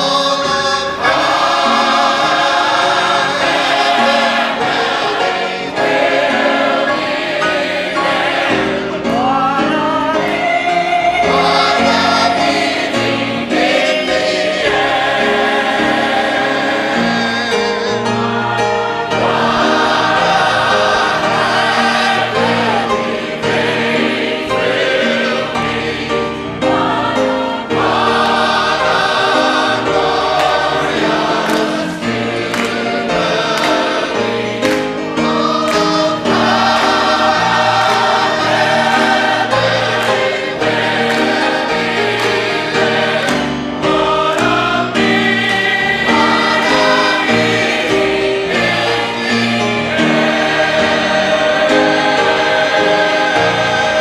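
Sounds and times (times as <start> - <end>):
choir and congregation singing gospel: 0.0 - 54.0
piano accompaniment: 0.0 - 54.0.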